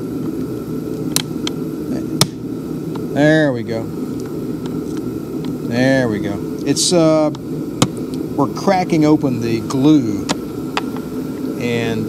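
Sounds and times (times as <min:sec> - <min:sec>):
space heater running: 0:00.0 - 0:12.0.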